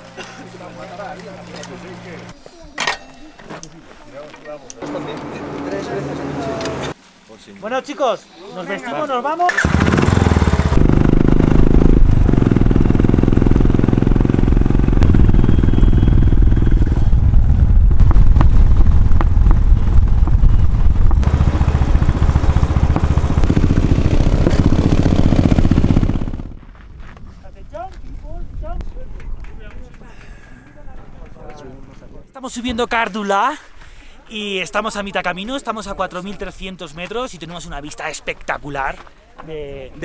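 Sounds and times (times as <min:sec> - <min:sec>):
voices: 0:00.0 - 0:09.6
motorcycle engine running: 0:09.6 - 0:26.7.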